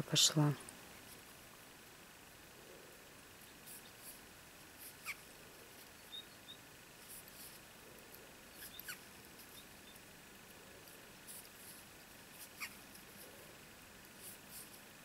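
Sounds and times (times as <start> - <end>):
quiet hiss: 0.0 - 15.0
yarn squeaking on crochet hook: 8.6 - 9.6, 12.4 - 12.8.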